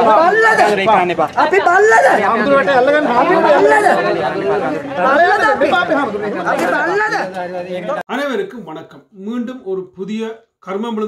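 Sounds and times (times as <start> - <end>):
crowd talking loudly: 0.0 - 8.0.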